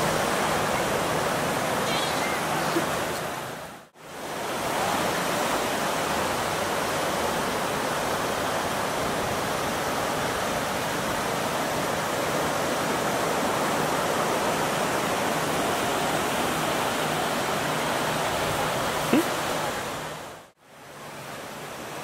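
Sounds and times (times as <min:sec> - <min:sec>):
ocean surf: 0:00.0 - 0:22.0
wind: 0:00.0 - 0:22.0.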